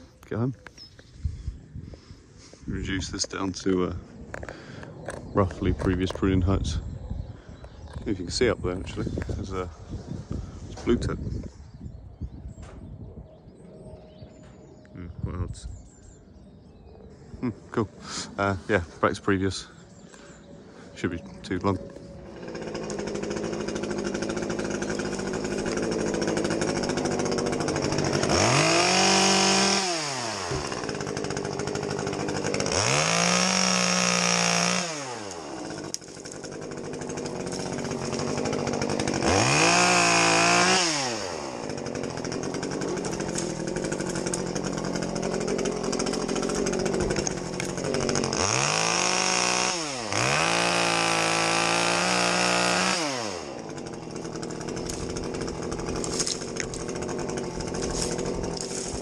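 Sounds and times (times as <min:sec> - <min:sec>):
chainsaw idling and revving: 0:17.9 - 0:59.0.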